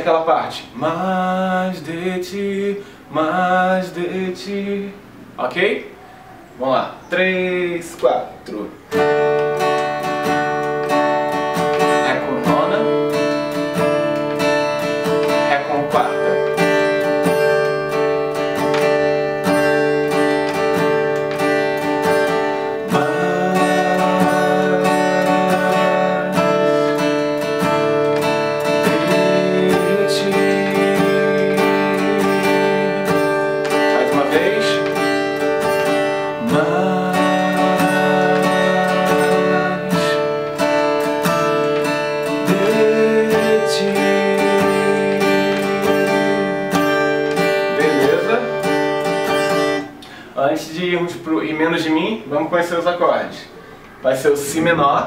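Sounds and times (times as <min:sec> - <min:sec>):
acoustic guitar strumming: 0:00.0 - 0:55.0
man singing: 0:00.3 - 0:05.2, 0:11.8 - 0:13.2, 0:15.3 - 0:16.8, 0:22.3 - 0:48.6.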